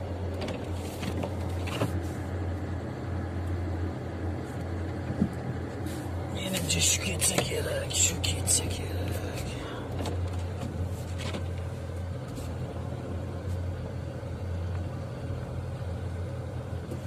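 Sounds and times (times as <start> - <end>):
car engine humming inside cabin: 0.0 - 17.0.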